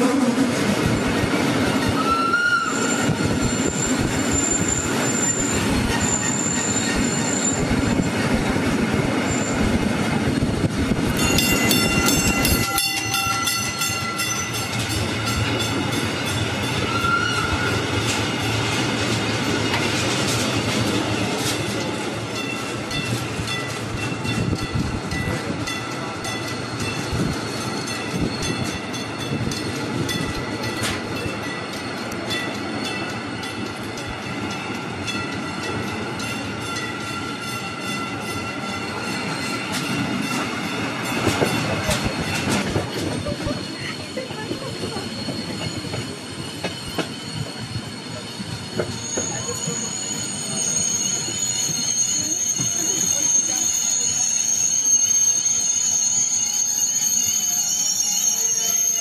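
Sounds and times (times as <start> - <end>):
rail clacks: 0.0 - 53.9
train wheels squealing: 1.8 - 10.4, 11.1 - 59.0.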